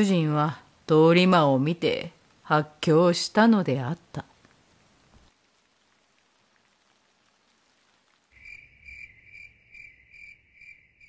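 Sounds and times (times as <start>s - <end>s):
high insect chirping: 8.4s - 11.0s.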